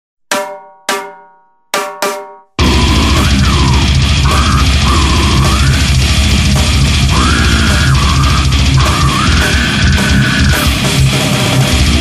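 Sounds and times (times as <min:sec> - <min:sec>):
metallic bell-like percussion strikes: 0:00.3 - 0:02.6.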